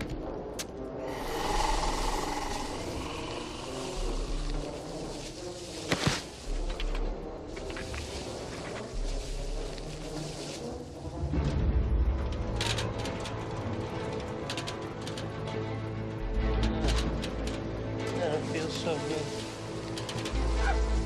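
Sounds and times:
eerie noisy drone: 0:00.0 - 0:14.7
deep low pulses: 0:01.0 - 0:05.4.

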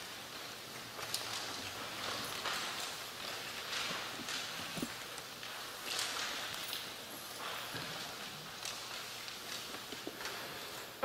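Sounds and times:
audience rustling and shuffling: 0:00.0 - 0:11.0.

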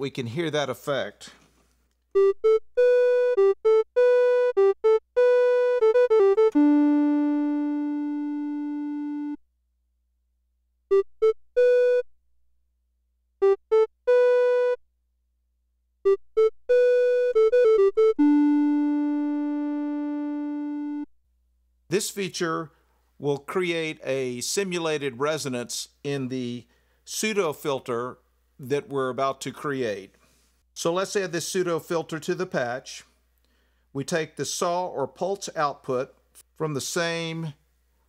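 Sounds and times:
synthesizer playing recorder-like notes: 0:02.2 - 0:09.4, 0:13.4 - 0:14.8, 0:16.1 - 0:21.1.

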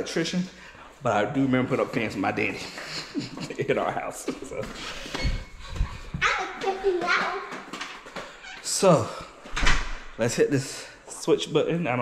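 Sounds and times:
excited high-pitched voices: 0:05.7 - 0:07.8.

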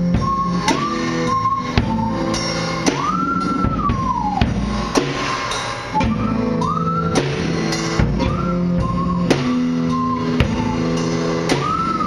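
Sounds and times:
drum hits: 0:00.0 - 0:12.0.

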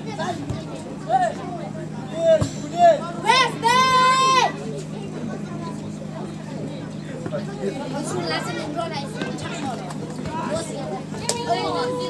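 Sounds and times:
players shouting: 0:00.0 - 0:04.7, 0:07.6 - 0:12.0.

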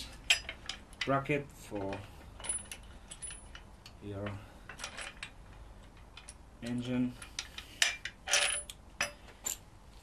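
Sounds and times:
metal bracket and bolts clinking: 0:00.2 - 0:01.2, 0:06.0 - 0:09.7.

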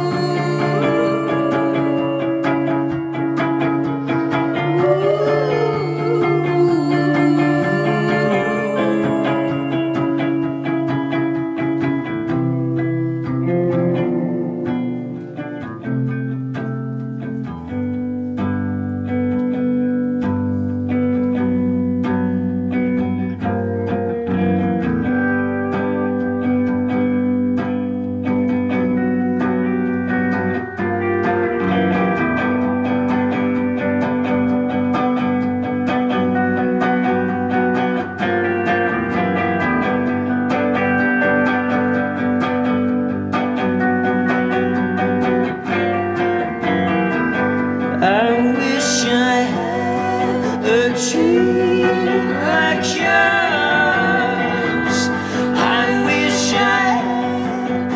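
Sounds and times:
electric guitar notes: 0:00.0 - 0:57.9
held keyboard chords: 0:00.0 - 0:57.9.

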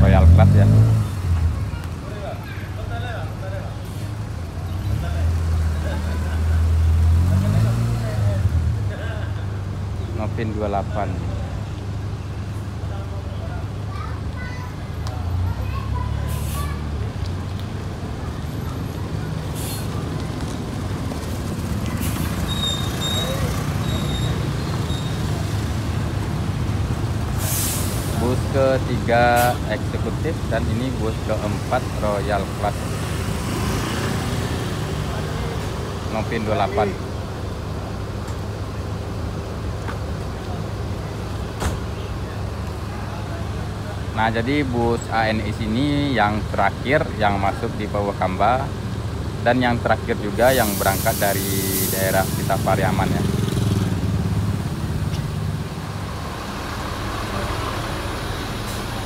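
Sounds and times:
bus engine running: 0:00.0 - 0:59.0
air brake hisses: 0:19.5 - 0:20.0, 0:27.4 - 0:28.2.

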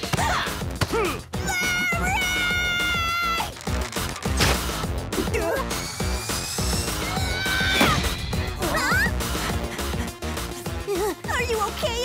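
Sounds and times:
cartoon music with steady beat: 0:03.4 - 0:12.0.

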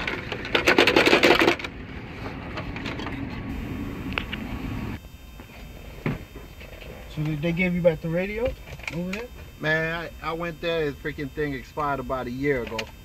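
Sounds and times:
metal and plastic rattling: 0:00.0 - 0:03.4.

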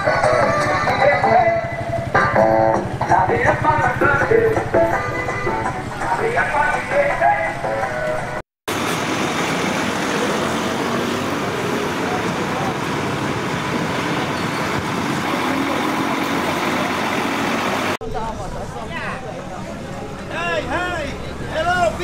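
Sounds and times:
traffic noise: 0:00.0 - 0:22.0
voices: 0:10.0 - 0:22.0.

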